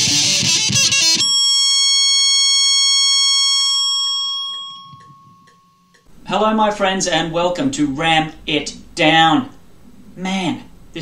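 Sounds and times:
distorted electric guitar solo: 0:00.0 - 0:01.4.

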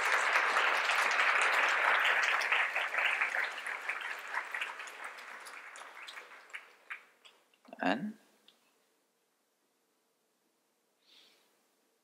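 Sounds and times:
audience applauding: 0:00.0 - 0:07.1.

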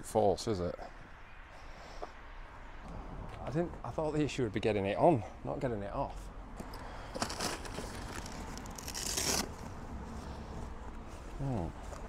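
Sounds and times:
nylon straps and fabric rustling: 0:07.1 - 0:12.0.

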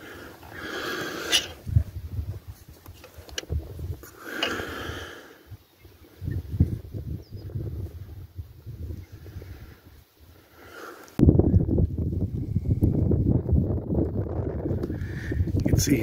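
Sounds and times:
person breathing close to microphone: 0:00.0 - 0:01.7, 0:04.0 - 0:05.6, 0:09.1 - 0:13.0, 0:14.9 - 0:15.6
wind rumbling on microphone: 0:00.0 - 0:16.0.

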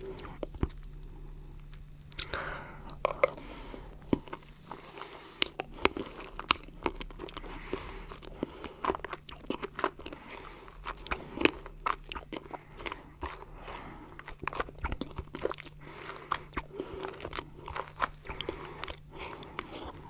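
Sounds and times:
wet chewing sounds: 0:00.0 - 0:20.0.

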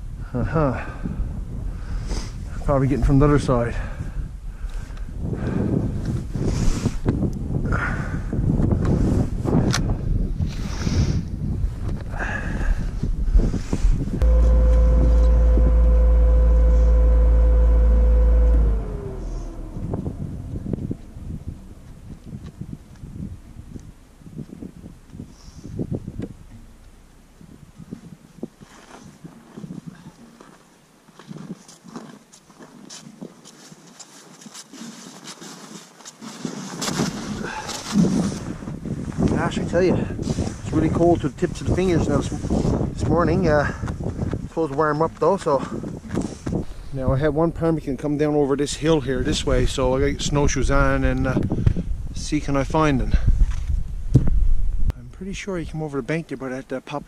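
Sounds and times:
wind on microphone: 0:00.0 - 0:30.2, 0:36.4 - 0:55.6
snowmobile engine: 0:14.2 - 0:22.0
footsteps crunching in snow: 0:28.5 - 0:39.3.

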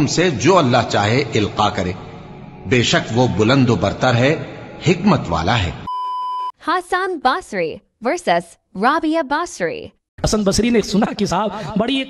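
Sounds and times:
electronic beep: 0:05.9 - 0:06.5.

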